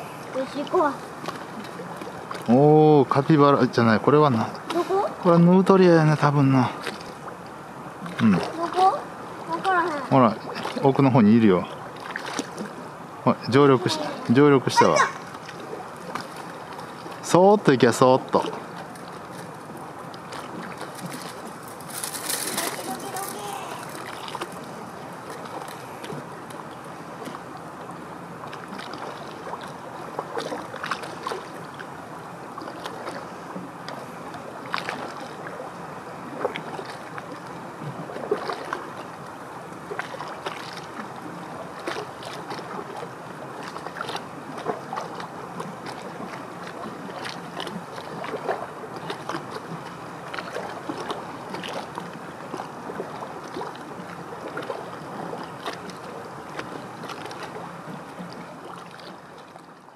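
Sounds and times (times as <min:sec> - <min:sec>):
waves lapping against rocks: 0:00.0 - 0:59.9.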